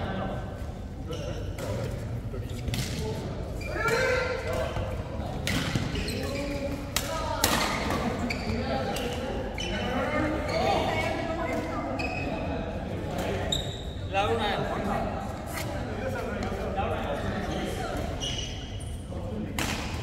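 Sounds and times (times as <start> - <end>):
players' voices: 0.0 - 20.0
rackets hitting shuttlecock: 6.9 - 8.1, 19.5 - 20.0.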